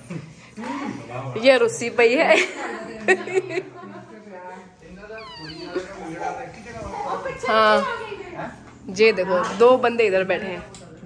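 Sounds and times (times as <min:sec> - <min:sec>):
quiet voices: 0:04.6 - 0:08.9
small child squealing: 0:05.1 - 0:06.0.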